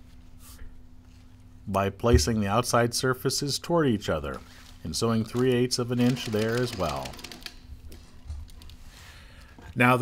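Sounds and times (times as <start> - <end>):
sewing machine stitching: 5.3 - 7.6.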